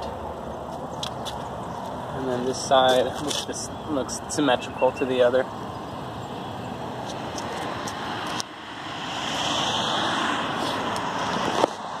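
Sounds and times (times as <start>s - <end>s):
road traffic noise: 0.0s - 12.0s
car passing by: 7.0s - 12.0s.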